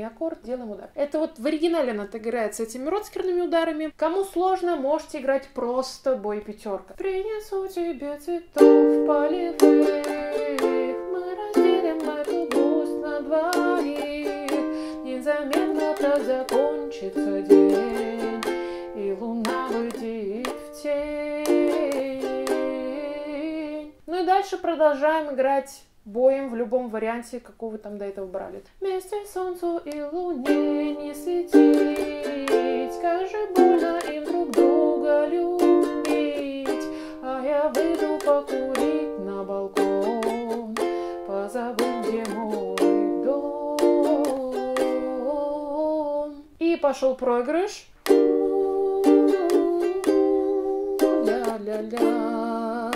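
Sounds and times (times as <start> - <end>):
woman singing: 0.0 - 52.9
ukulele strummed: 8.6 - 23.8, 29.9 - 45.5, 48.0 - 52.9.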